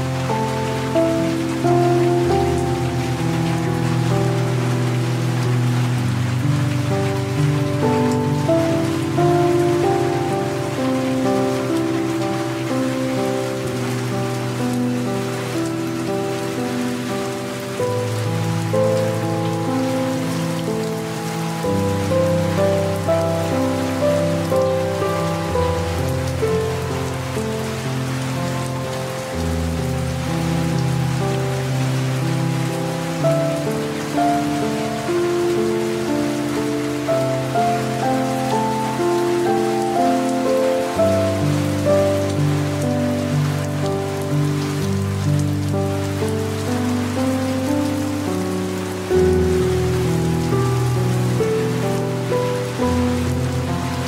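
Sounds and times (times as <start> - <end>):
soft piano music: 0.0 - 54.0
steady rain: 0.0 - 54.0.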